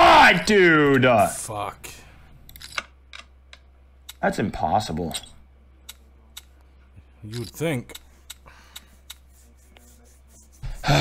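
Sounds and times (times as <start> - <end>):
faint low hum: 0.6 - 11.0.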